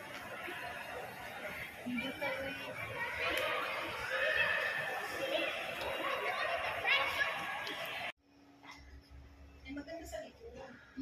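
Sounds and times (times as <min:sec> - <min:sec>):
indistinct voices in a mall: 0:00.0 - 0:11.0.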